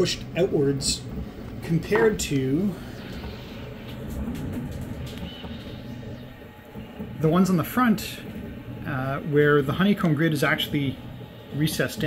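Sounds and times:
printer fans whirring: 0:00.0 - 0:12.0
stepper motor tones: 0:00.0 - 0:12.0.

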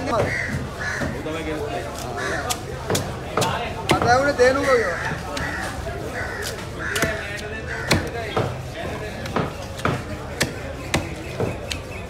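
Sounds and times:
crows cawing: 0:00.1 - 0:01.2, 0:02.2 - 0:02.7, 0:04.6 - 0:08.2
knife chopping fish: 0:01.8 - 0:05.7, 0:06.3 - 0:11.8.

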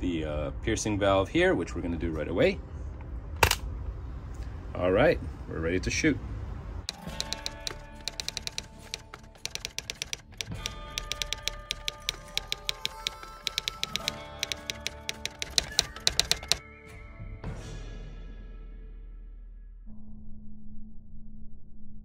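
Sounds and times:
typewriter keys clicking: 0:06.9 - 0:16.6
background music with held tones: 0:06.9 - 0:18.4.

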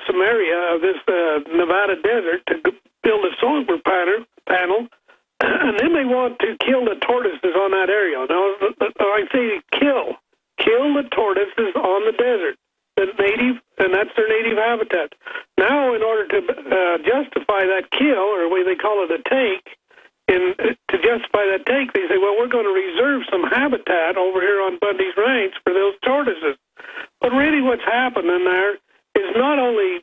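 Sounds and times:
man talking over telephone: 0:00.0 - 0:04.9, 0:05.6 - 0:30.0.

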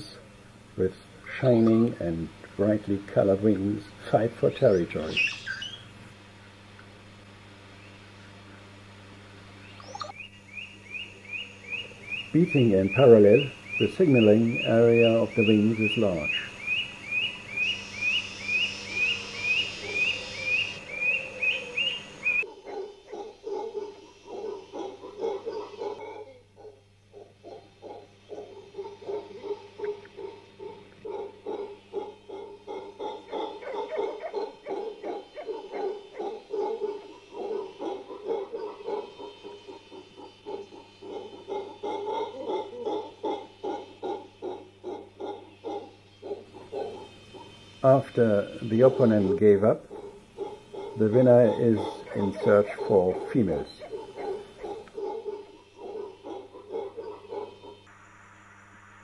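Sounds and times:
steady low hum: 0:00.0 - 0:59.0
animal calls: 0:00.8 - 0:06.0, 0:09.8 - 0:57.9.

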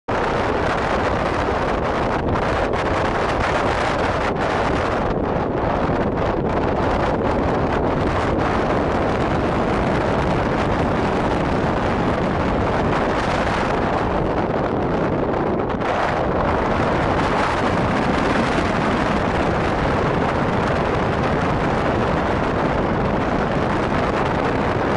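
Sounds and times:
car road and wind noise: 0:00.0 - 0:24.9.

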